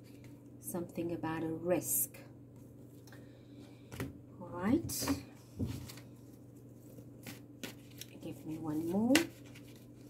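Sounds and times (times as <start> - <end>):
low steady hum: 0.0 - 10.0
cards rustling: 5.8 - 10.0.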